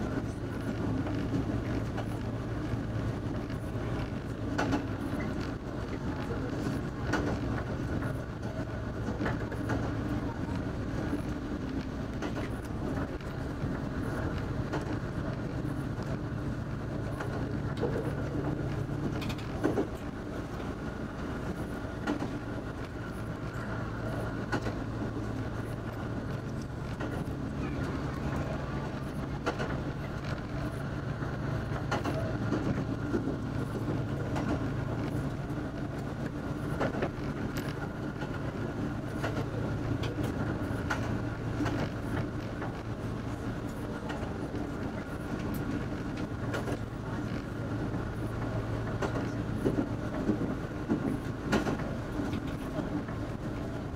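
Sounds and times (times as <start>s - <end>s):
diesel railcar engine drone: 0.0s - 53.9s
wheels clicking over rails: 0.0s - 53.9s.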